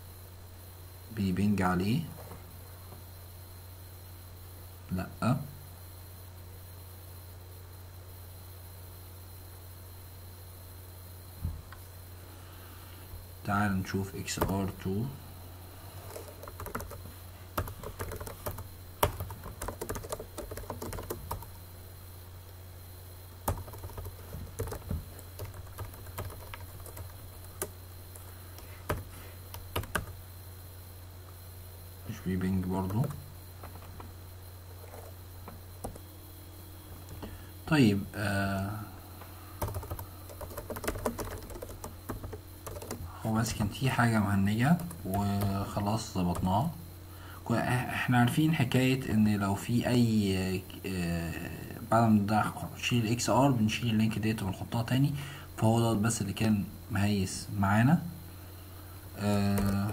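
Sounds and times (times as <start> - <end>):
steady low hum: 0.0 - 59.9
computer keyboard typing: 16.0 - 17.0, 17.6 - 21.5, 23.4 - 27.7, 28.6 - 30.2, 35.8 - 36.0, 39.6 - 43.7, 59.3 - 59.9.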